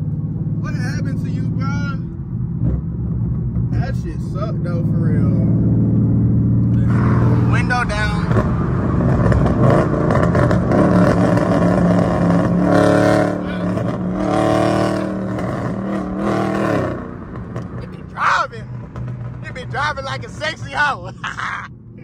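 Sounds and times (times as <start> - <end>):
car engine cruising from inside cabin: 0.0 - 22.0.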